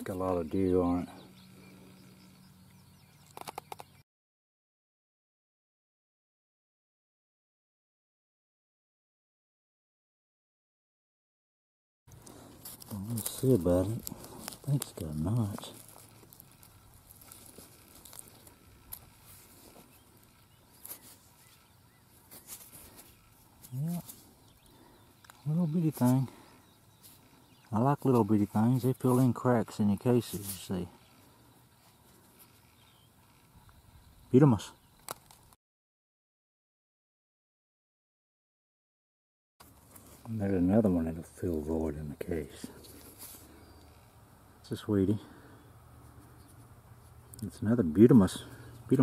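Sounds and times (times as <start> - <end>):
distant birds chirping: 0.0 - 4.0, 12.1 - 35.6, 39.7 - 49.0
sharp clicks: 3.2 - 4.0.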